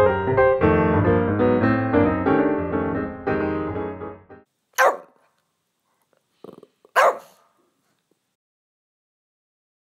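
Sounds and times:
dog barking: 4.8s - 5.3s, 6.9s - 7.6s.

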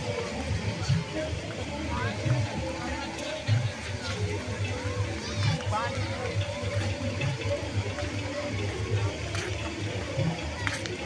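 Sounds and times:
fountain water splashing: 0.0s - 11.0s
people chattering: 0.0s - 11.0s.

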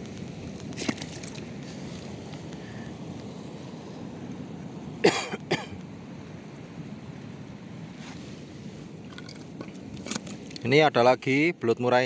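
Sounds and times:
sea surf on rocky shore: 0.0s - 10.9s.

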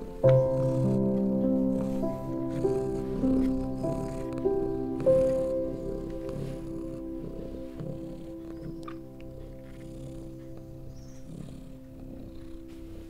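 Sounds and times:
cat purring: 0.0s - 13.0s
slow calm music: 0.0s - 13.0s.

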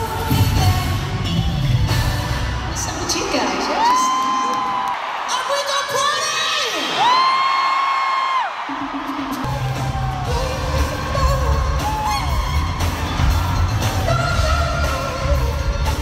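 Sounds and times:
crowd screaming: 1.2s - 16.0s
band heavy bass beat: 8.9s - 16.0s
high voice singing: 9.5s - 16.0s.

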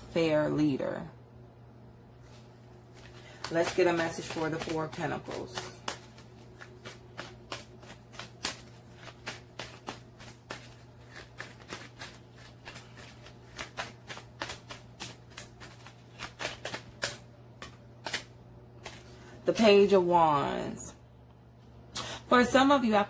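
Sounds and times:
cards being shuffled: 2.2s - 19.3s.

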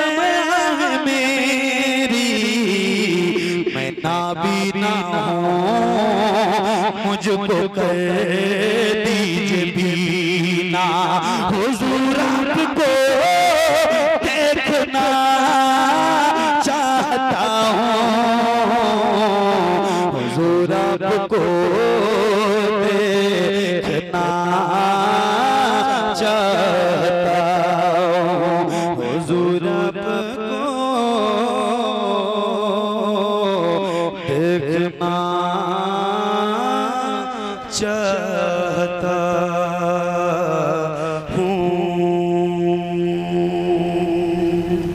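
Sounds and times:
man chanting into a microphone: 0.0s - 44.9s
man singing a long note: 0.0s - 44.9s.

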